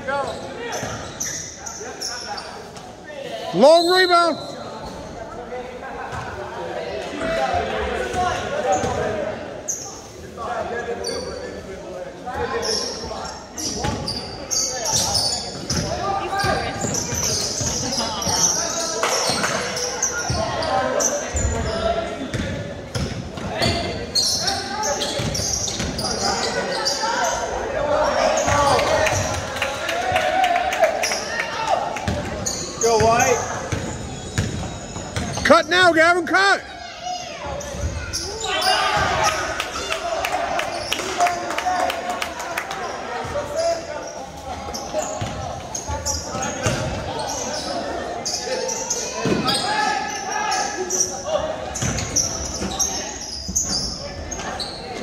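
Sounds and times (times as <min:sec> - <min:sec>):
sneakers squeaking: 0:00.0 - 0:05.5, 0:06.1 - 0:06.4, 0:07.1 - 0:11.7, 0:12.3 - 0:29.5, 0:31.0 - 0:36.0, 0:36.6 - 0:41.4, 0:42.8 - 0:55.0.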